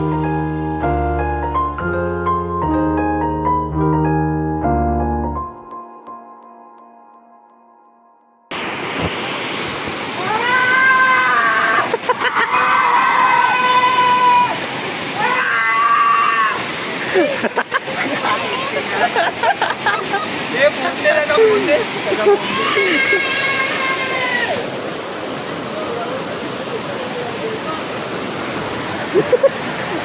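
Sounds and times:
waterfall rushing over rocks: 0:08.5 - 0:30.0.

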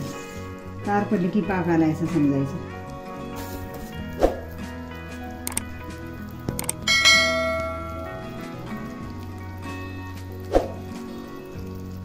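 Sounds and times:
soft background music: 0:00.0 - 0:12.0
bell chime: 0:06.8 - 0:08.7.

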